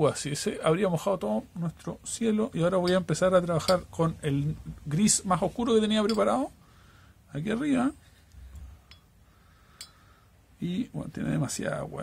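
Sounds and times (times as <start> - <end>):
paintbrush clinking against glass jar: 2.8 - 4.1, 6.0 - 6.4.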